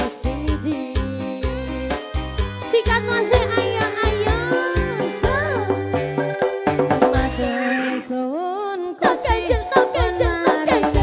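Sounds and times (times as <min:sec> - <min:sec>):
live band with electronic keyboards: 0:00.0 - 0:08.2, 0:09.0 - 0:11.0
low drum beats: 0:02.2 - 0:07.4.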